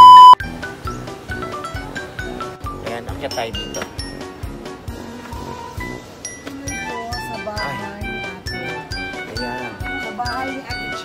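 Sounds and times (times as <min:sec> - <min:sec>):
test tone beep: 0:00.0 - 0:00.4
light music with plucked notes: 0:00.4 - 0:11.0.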